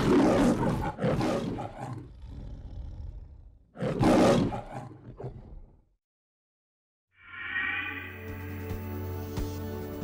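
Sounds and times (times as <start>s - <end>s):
lion roaring: 0.0s - 5.8s.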